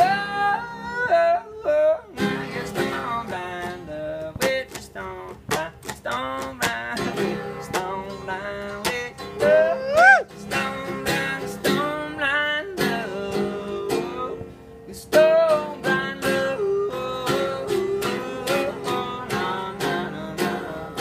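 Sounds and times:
guitar with bending notes: 0:00.0 - 0:21.0
wordless vocals: 0:00.0 - 0:21.0.

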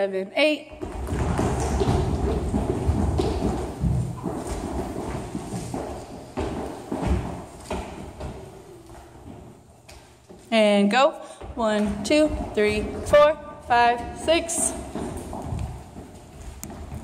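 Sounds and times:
feet stomping on a floor: 0:00.7 - 0:10.5, 0:11.4 - 0:17.0.

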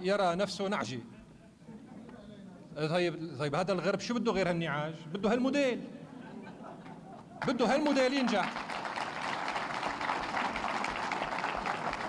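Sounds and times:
audience applauding: 0:07.4 - 0:12.0.

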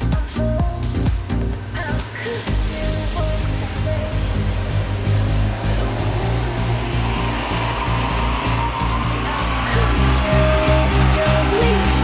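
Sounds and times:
background music: 0:00.0 - 0:12.0
engine and rollers roaring: 0:00.8 - 0:12.0.

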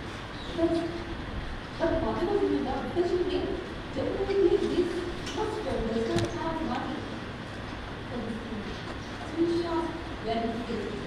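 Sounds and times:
low rumble in large hall: 0:00.0 - 0:11.0.

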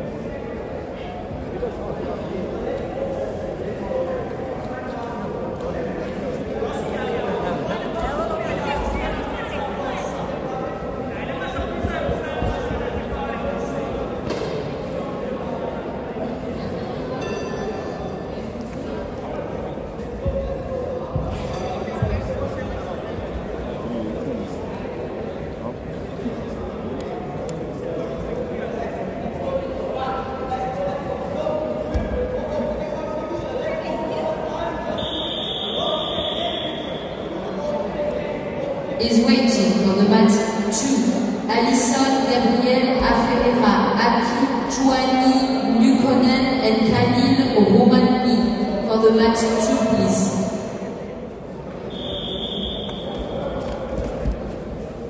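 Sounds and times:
indistinct echoing voices: 0:28.5 - 0:55.0.

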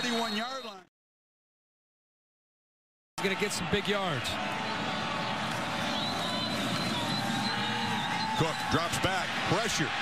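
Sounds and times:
stadium crowd din: 0:03.2 - 0:10.0.

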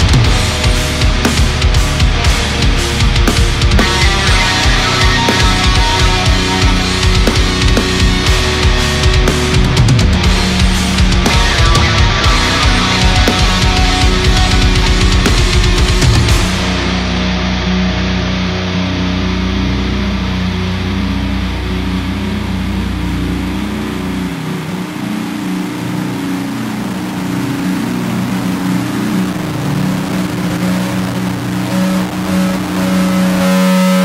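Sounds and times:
distorted electric guitar ringing: 0:00.0 - 0:34.0
low bass note: 0:00.0 - 0:34.0.

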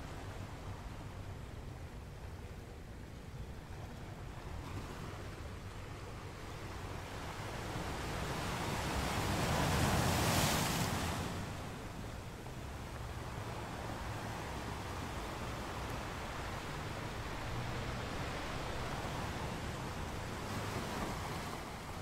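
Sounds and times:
ocean surf on rocky shore: 0:00.0 - 0:22.0.

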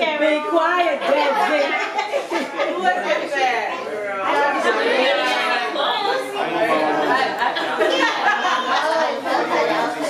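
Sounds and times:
overlapping group chatter: 0:00.0 - 0:10.0.

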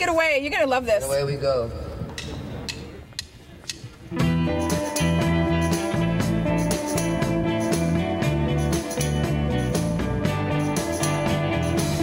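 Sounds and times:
rock band playing: 0:04.1 - 0:12.0.

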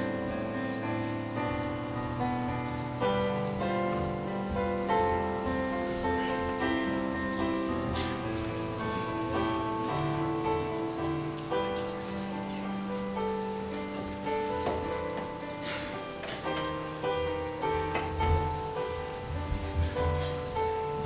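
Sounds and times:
electric keyboard chords: 0:00.0 - 0:21.0
light rustling: 0:00.0 - 0:21.0.

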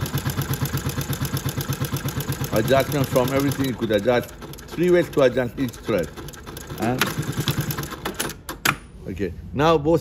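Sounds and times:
sewing machine stitching: 0:00.0 - 0:08.5.

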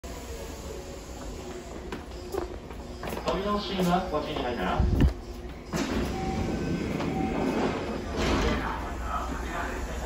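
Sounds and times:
stopped train running noise: 0:00.0 - 0:10.0
train doors sliding open: 0:04.3 - 0:09.5.

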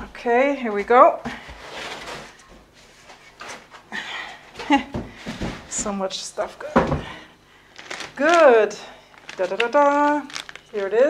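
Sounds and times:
plastic wrap crinkling: 0:07.7 - 0:11.0.

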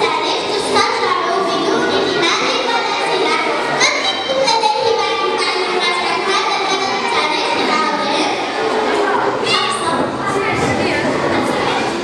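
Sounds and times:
children talking: 0:00.0 - 0:12.0.

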